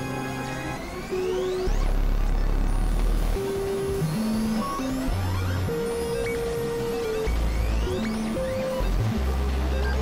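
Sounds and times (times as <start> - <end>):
experimental synthesizer music: 0.0 - 10.0.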